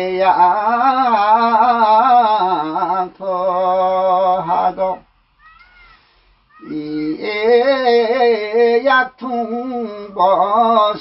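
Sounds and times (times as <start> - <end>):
man singing: 0.0 - 5.1, 6.6 - 11.0.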